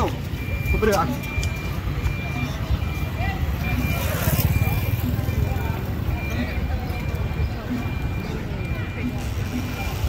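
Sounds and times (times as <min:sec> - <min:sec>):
faint voices: 0:00.0 - 0:10.0
reversing alarm beeping: 0:00.0 - 0:10.0
vehicle engine rumbling: 0:00.0 - 0:10.0.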